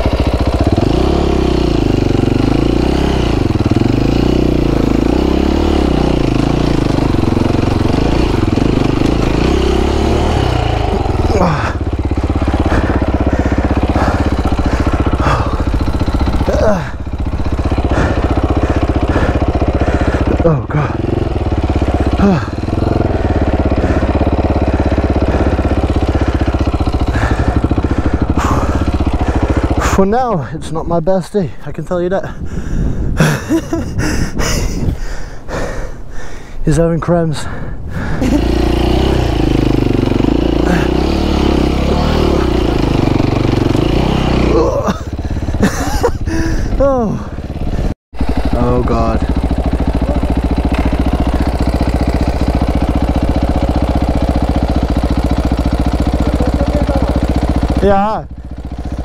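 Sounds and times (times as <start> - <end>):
dirt bike engine running: 0.0 - 37.2, 37.9 - 59.0.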